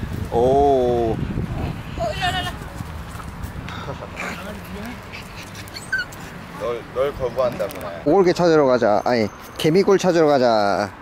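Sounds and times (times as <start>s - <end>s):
small dog whimpering yips: 5.4s - 6.2s.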